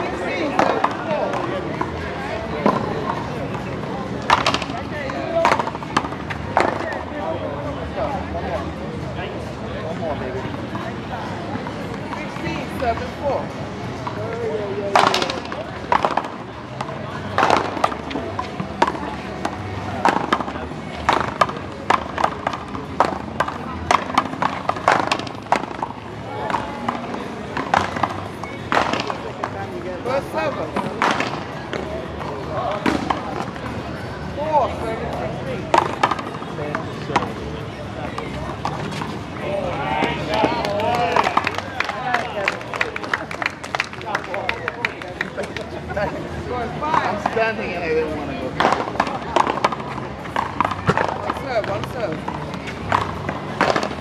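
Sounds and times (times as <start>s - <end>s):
paddles hitting ball: 4.2s - 7.0s, 14.9s - 33.8s, 35.6s - 37.4s, 38.0s - 45.7s, 48.5s - 54.0s.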